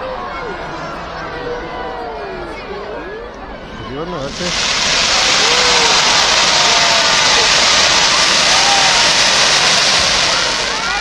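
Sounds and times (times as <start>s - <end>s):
fireworks hissing: 4.2s - 11.0s.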